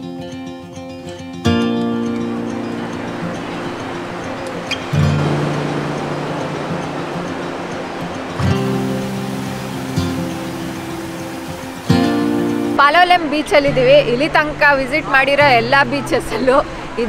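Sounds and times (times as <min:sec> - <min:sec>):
acoustic guitar chords: 0:00.0 - 0:14.7
surf washing: 0:01.5 - 0:17.0.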